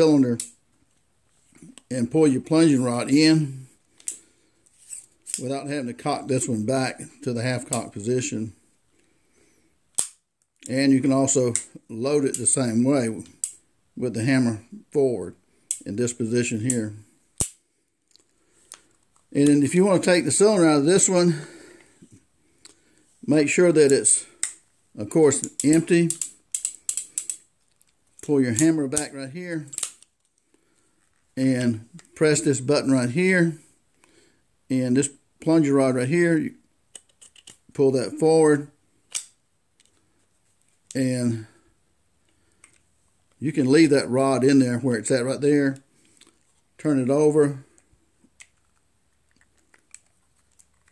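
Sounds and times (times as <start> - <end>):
metallic click-scrape of revolver pin: 4.0 - 5.5, 17.4 - 18.9, 25.4 - 29.1, 29.7 - 30.4, 39.1 - 40.0
sharp metallic revolver click: 17.4 - 17.6, 25.6 - 27.4.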